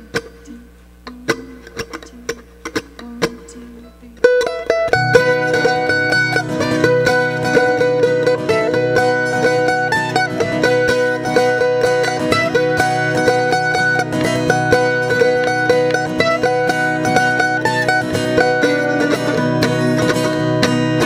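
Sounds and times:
acoustic guitar strumming: 0:00.0 - 0:21.0
mandolin picking a fast melody: 0:00.0 - 0:21.0.

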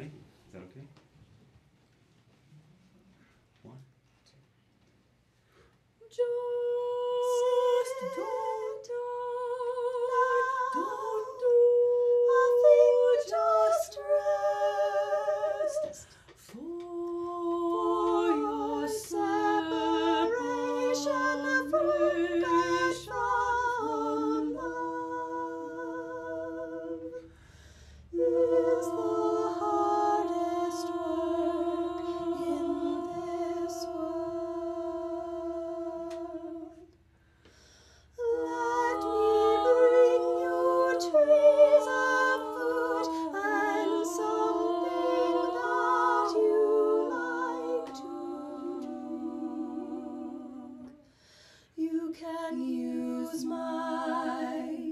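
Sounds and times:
women singing unaccompanied: 0:06.0 - 0:27.3, 0:28.1 - 0:36.9, 0:38.2 - 0:51.1, 0:51.8 - 0:54.9
women singing a held note: 0:38.1 - 0:54.9.

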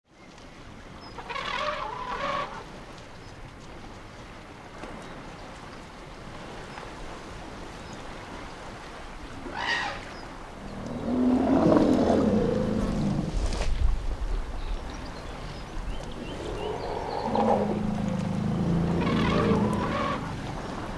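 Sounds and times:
elephant roaring: 0:10.7 - 0:13.4, 0:16.2 - 0:20.6
elephant trumpeting: 0:16.4 - 0:20.6.

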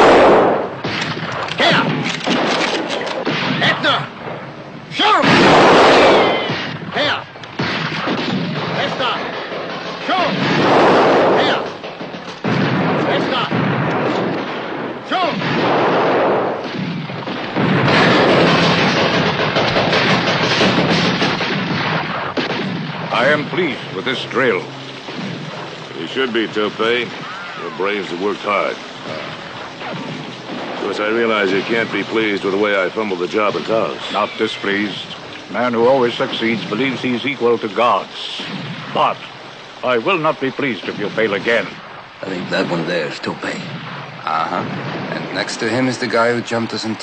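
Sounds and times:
gunshots: 0:00.0 - 0:47.0
men shouting and yelling: 0:04.9 - 0:07.4, 0:25.9 - 0:29.6.

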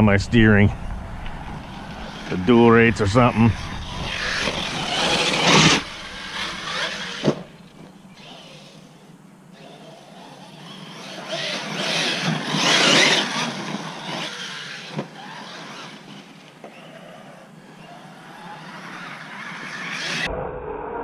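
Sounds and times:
rc truck motor and tyres: 0:00.5 - 0:20.3.

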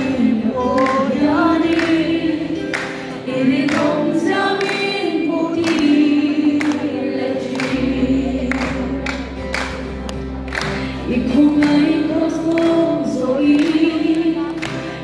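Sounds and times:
woman singing gospel through pa: 0:00.0 - 0:09.3, 0:11.0 - 0:14.8
backing music: 0:00.0 - 0:15.0.

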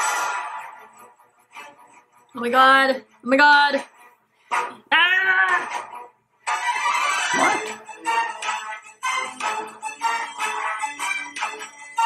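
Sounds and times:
action film music: 0:00.0 - 0:03.1, 0:04.4 - 0:12.0.

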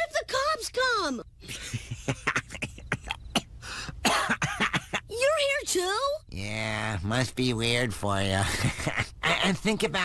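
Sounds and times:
harsh coughing: 0:01.4 - 0:05.1.

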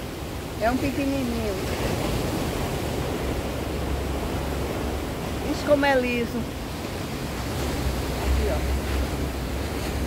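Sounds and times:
surf rushing: 0:00.0 - 0:10.0
wind rumbling on microphone: 0:00.0 - 0:10.0.

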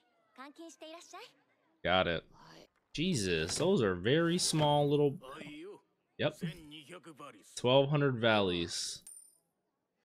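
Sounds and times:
man speaking: 0:03.0 - 0:09.0.

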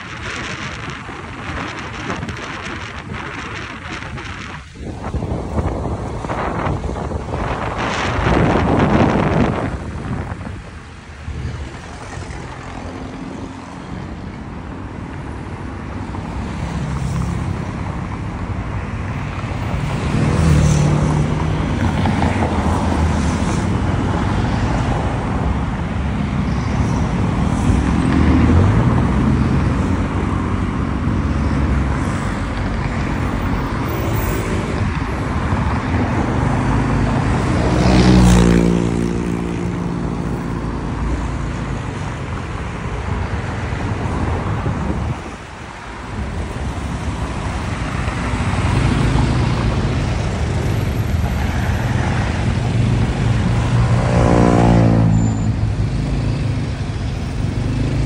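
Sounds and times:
road traffic noise: 0:00.0 - 0:58.0.

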